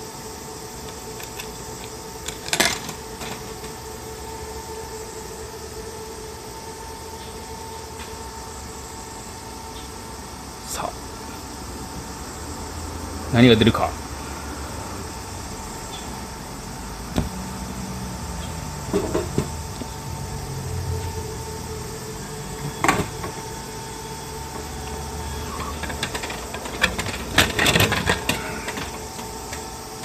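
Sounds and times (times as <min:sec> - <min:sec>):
vending mechanism humming: 0:00.0 - 0:30.0.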